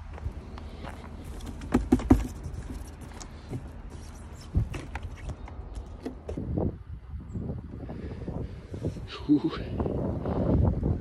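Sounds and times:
wind buffeting microphone: 4.4 - 11.0.

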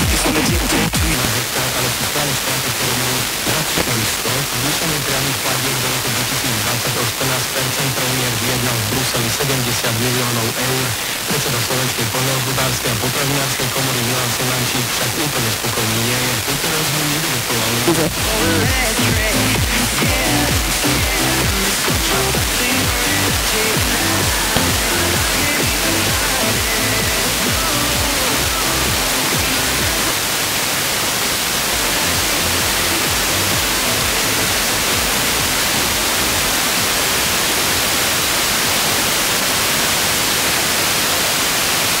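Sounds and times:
radio music with a beat: 0.0 - 38.9
radio static hiss: 0.0 - 42.0.

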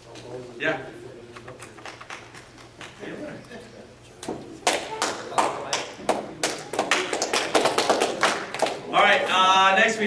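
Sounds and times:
audience applause: 4.6 - 8.8.

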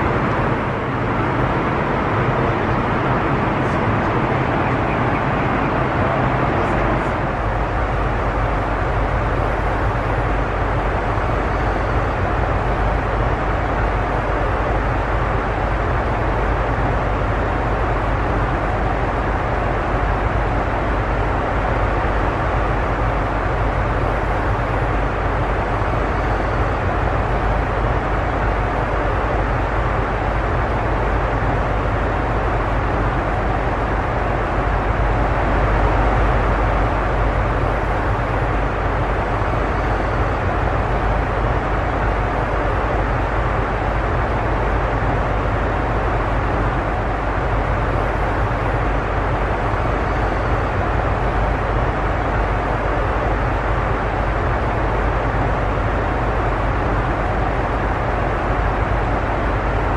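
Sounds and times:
airplane cabin noise: 0.0 - 59.9.

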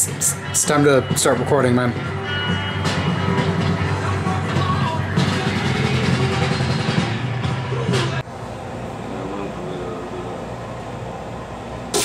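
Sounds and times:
background music with low notes: 0.0 - 8.2.

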